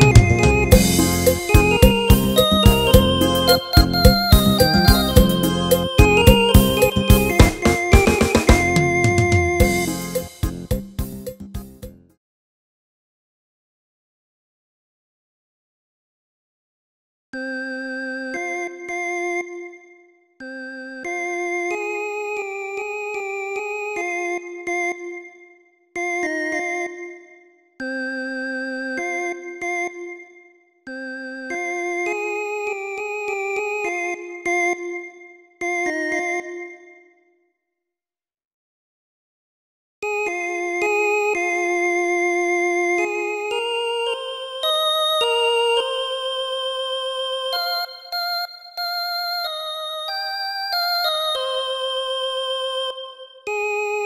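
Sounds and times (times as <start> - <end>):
keyboard synth melody: 0.0 - 12.0, 17.4 - 37.2, 40.0 - 54.0.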